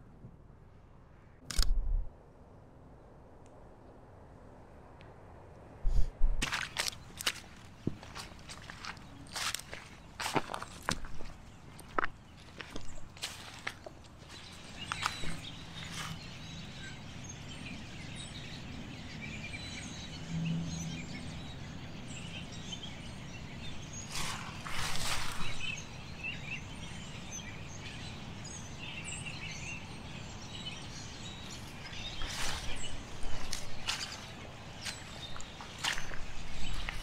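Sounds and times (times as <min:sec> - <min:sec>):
birds calling and chirping: 0:06.4 - 0:37.0
rustling noise: 0:24.1 - 0:25.7, 0:31.5 - 0:37.0.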